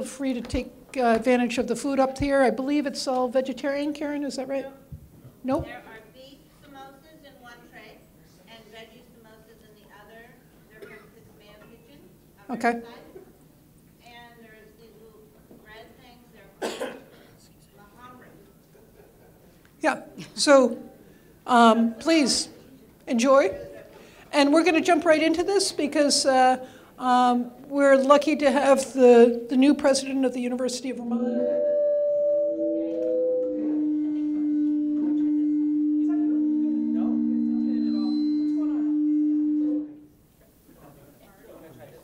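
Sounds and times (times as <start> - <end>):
person coughing: 10.8 - 11.2, 16.6 - 17.4
sustained ringing tones: 31.0 - 40.0.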